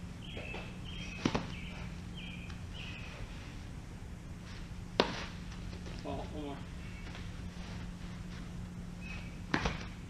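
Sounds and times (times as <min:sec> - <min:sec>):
baseball smacking protective gear: 0:01.1 - 0:01.7, 0:04.9 - 0:05.8, 0:09.4 - 0:10.0.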